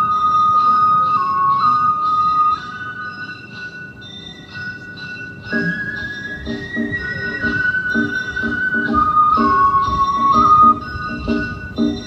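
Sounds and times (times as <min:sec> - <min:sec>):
bamboo flute long notes: 0:00.0 - 0:03.8, 0:04.8 - 0:12.0.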